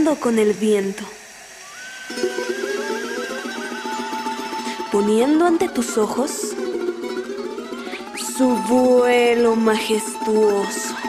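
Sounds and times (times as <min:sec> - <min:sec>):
charango strummed in tremolo: 0:01.2 - 0:11.0
high trilling melody line: 0:01.6 - 0:11.0.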